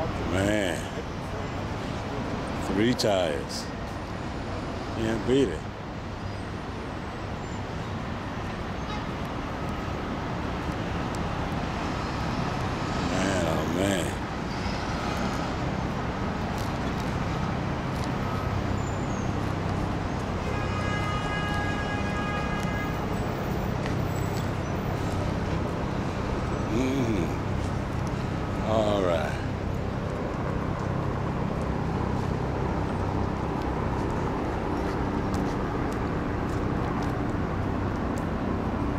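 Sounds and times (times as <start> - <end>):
city traffic noise: 0.0 - 38.9.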